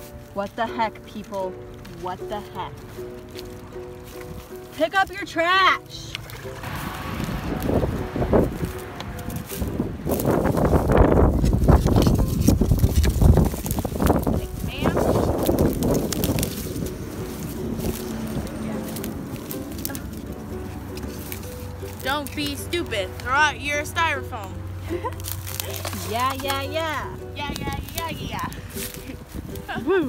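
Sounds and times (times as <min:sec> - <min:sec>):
dry twigs and leaves crackling: 0:00.0 - 0:30.0
low rumble: 0:06.2 - 0:22.3.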